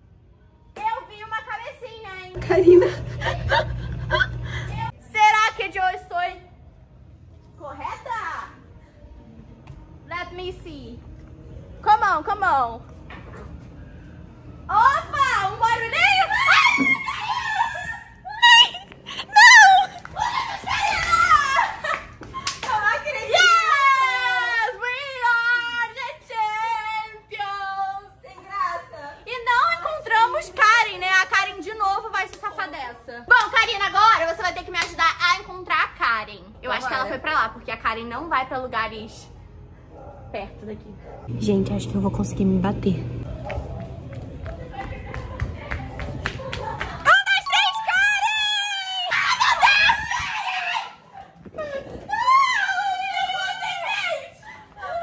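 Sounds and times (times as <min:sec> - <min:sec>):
women's high-pitched cries: 0:14.8 - 0:22.1, 0:47.0 - 0:55.0
girls squealing and laughing: 0:15.9 - 0:24.7, 0:46.7 - 0:55.0.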